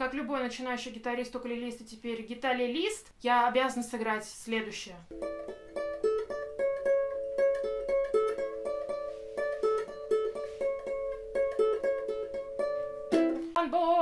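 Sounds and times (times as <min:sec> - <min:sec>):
guitalele fingerpicked melody: 0:05.1 - 0:14.0.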